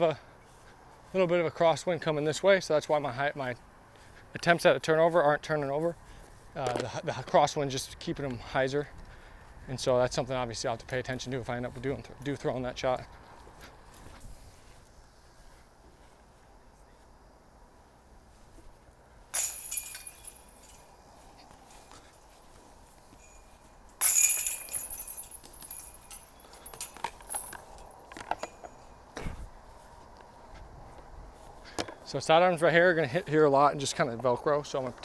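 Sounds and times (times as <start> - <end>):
chains rattling as discs hit: 19.3 - 21.0, 23.1 - 28.9.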